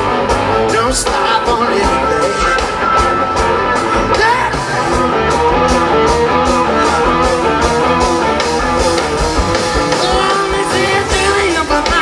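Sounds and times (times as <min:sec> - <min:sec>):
bass: 0:00.0 - 0:12.0
electric guitar notes: 0:00.0 - 0:12.0
steady drum beat: 0:00.0 - 0:12.0.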